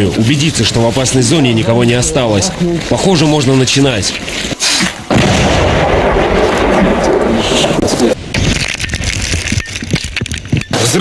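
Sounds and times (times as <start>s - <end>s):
explosion blast: 5.1s - 8.6s.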